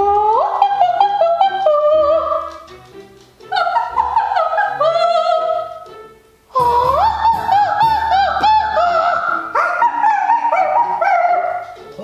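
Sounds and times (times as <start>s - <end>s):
operatic soprano singing: 0.0s - 2.6s, 3.5s - 5.9s, 6.5s - 12.0s.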